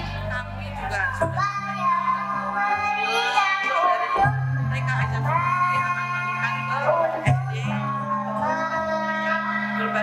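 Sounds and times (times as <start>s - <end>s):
musical accompaniment: 0.0s - 10.0s
children singing: 1.4s - 4.8s, 5.4s - 10.0s.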